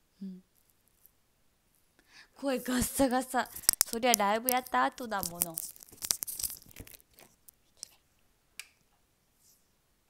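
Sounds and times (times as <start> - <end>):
cable rubbing on microphone: 2.8 - 8.0.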